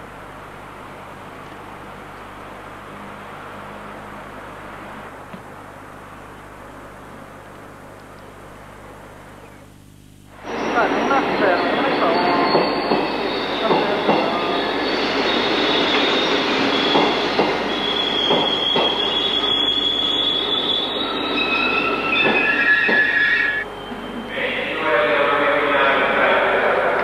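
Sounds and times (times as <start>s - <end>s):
passenger train passing: 0.0s - 6.1s, 10.3s - 27.0s
high squealing wheels: 10.4s - 25.4s.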